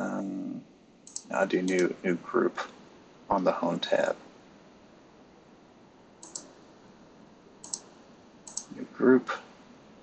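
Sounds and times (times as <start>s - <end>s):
computer mouse clicks: 1.0s - 1.9s, 6.2s - 6.6s, 7.6s - 8.8s.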